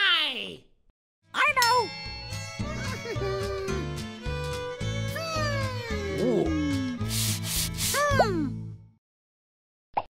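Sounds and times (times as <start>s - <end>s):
children's background music: 1.4s - 8.8s
short spray hisses: 7.0s - 8.0s.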